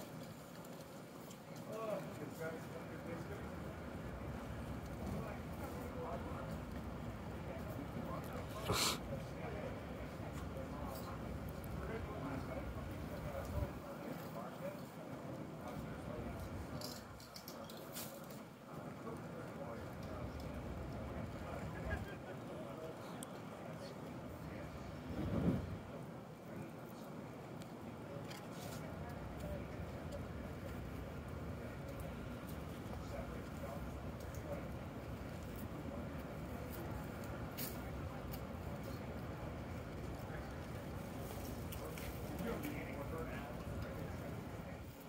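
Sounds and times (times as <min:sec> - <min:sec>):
distant people talking: 0:00.0 - 0:45.0
faint voices: 0:00.0 - 0:45.0
low street rumble: 0:00.0 - 0:45.0.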